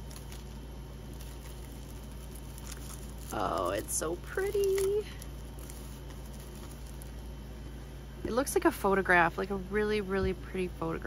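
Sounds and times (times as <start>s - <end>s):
plastic sleeve crinkling: 0.0s - 7.5s
steady low hum: 0.0s - 11.0s.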